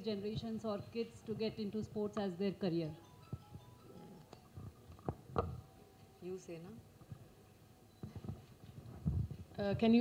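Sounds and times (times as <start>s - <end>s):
microphone handling knocks and rubs: 8.0s - 9.9s.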